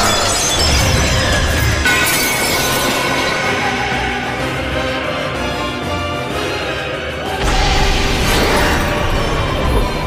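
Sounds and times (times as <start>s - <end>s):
dramatic orchestral score: 0.0s - 10.0s.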